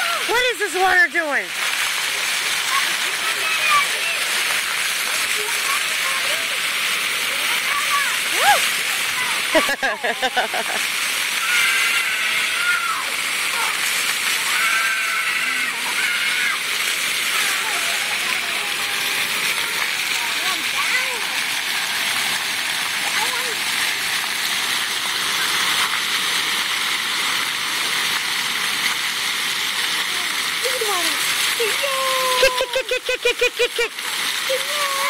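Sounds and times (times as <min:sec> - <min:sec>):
fountain jets spraying water: 0:00.0 - 0:35.0
children calling out: 0:11.3 - 0:21.3, 0:30.6 - 0:35.0.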